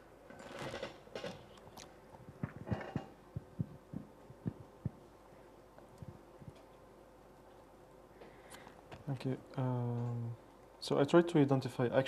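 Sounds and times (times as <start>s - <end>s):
soft low thumps on a table: 2.3s - 5.0s.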